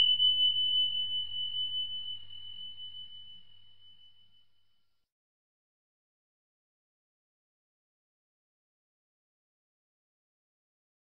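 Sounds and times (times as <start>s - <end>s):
high bell-like chime: 0.0s - 4.8s.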